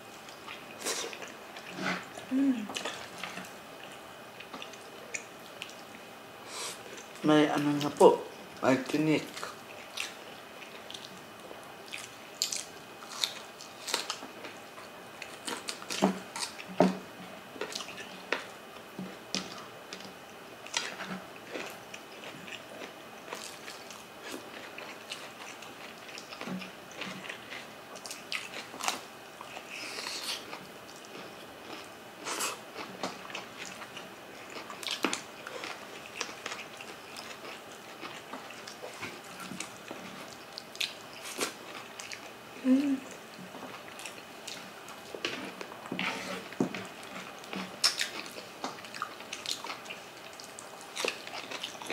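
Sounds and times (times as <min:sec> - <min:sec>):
chewing and mouth smacking: 0:11.8 - 0:14.6, 0:19.4 - 0:42.4, 0:43.0 - 0:51.9.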